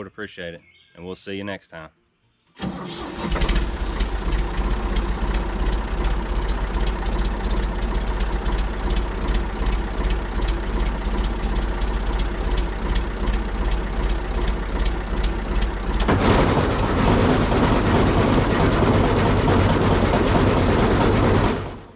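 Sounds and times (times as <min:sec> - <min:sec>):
hay mower mechanical clatter: 0:02.6 - 0:21.9
tractor engine idling: 0:02.6 - 0:21.9.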